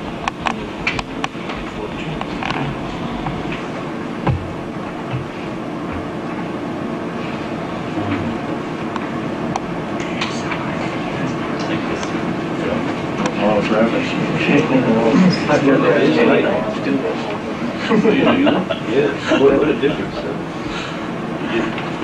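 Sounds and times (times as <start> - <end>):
people chattering: 9.9 - 22.0.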